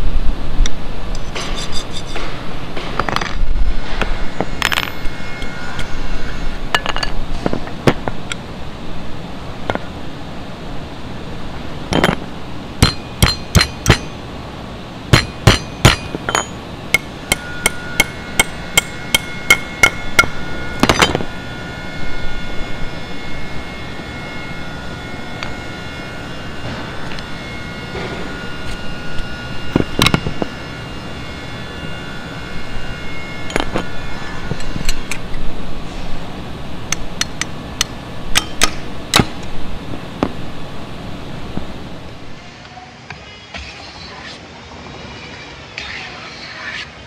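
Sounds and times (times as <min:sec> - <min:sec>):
metallic ringing tone: 0:03.0 - 0:07.4, 0:11.8 - 0:14.4, 0:15.1 - 0:36.0
hammer striking steel chisel: 0:12.8 - 0:14.2, 0:15.1 - 0:21.2.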